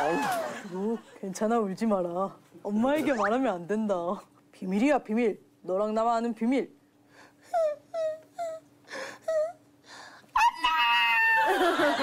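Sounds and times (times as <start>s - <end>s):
person imitating child sobbing: 7.5s - 9.6s.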